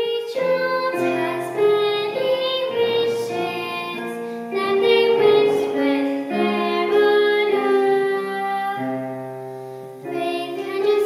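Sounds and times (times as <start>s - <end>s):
girl singing: 0.0s - 9.4s, 10.0s - 11.0s
piano chords: 0.0s - 11.0s.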